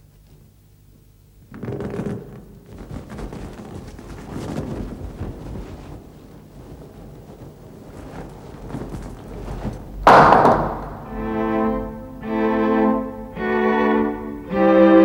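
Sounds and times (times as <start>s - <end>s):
faint rustling and knocking: 0.0s - 11.2s
loud sudden thud: 10.0s - 11.2s
bowed string music: 10.8s - 15.0s.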